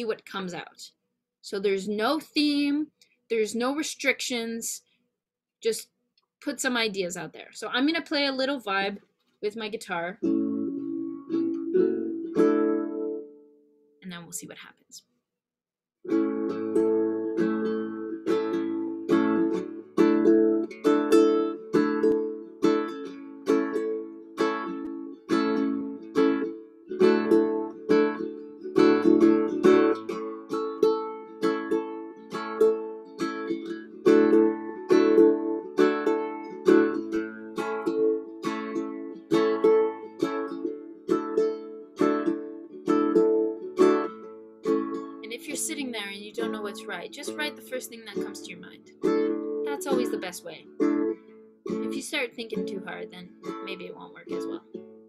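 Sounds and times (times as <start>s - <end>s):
ukulele strumming: 9.6s - 13.5s, 16.1s - 55.0s.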